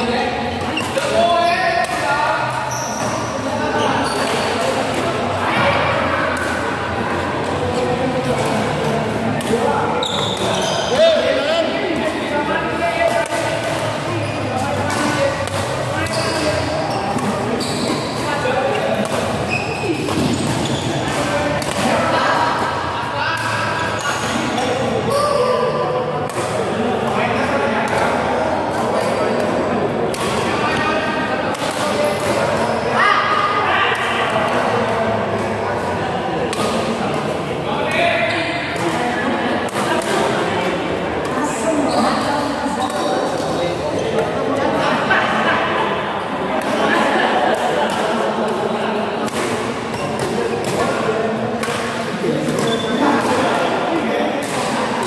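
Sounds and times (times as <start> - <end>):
people talking in background: 0.0 - 55.0
racket hitting shuttlecock: 4.1 - 5.4, 12.9 - 22.8, 26.2 - 26.8, 27.8 - 32.6, 33.9 - 37.3, 38.7 - 41.6, 46.6 - 48.6, 49.2 - 53.6, 54.4 - 55.0.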